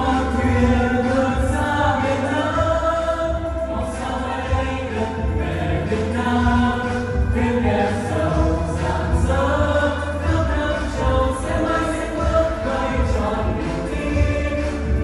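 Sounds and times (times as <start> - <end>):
backing track with pulsing bass: 0.0 - 15.0
group singing in unison: 0.0 - 15.0.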